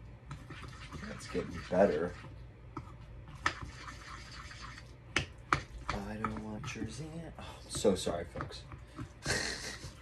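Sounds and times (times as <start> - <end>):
spoon stirring gooey mixture: 0.0 - 9.3.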